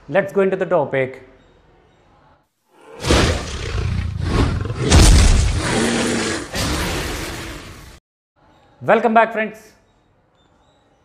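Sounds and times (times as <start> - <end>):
dragon roar: 2.8 - 8.0.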